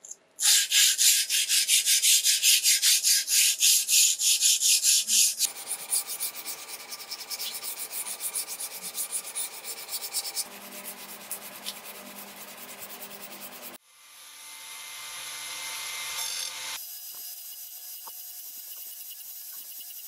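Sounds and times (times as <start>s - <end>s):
sandpaper rasping on steel blade: 0.4s - 13.8s.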